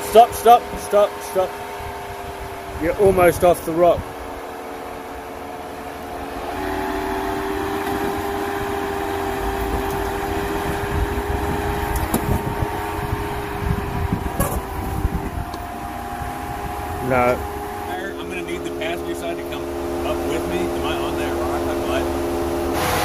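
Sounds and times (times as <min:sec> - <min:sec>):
engine running under load: 0:00.0 - 0:23.0.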